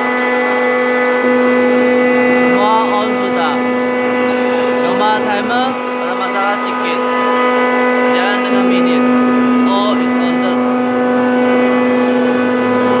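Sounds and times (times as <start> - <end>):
chiller machinery humming: 0.0 - 13.0.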